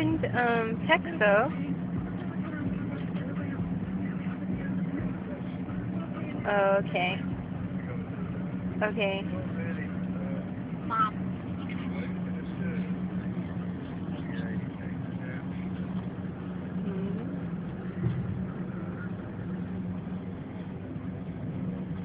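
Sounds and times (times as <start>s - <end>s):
car engine and road noise: 0.0s - 22.0s
low hum: 0.0s - 22.0s.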